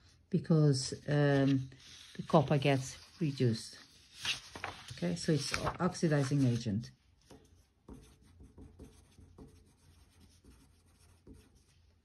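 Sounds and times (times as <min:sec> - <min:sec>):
pencil writing on paper: 0:07.4 - 0:11.9.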